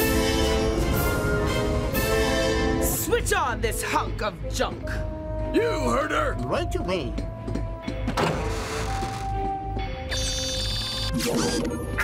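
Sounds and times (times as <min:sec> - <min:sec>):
soundtrack music with sustained tones: 0:00.0 - 0:12.0.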